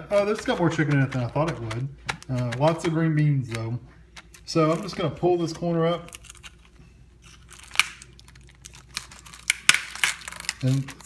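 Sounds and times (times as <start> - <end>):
plastic film crinkling and crackling: 0.0 - 11.0.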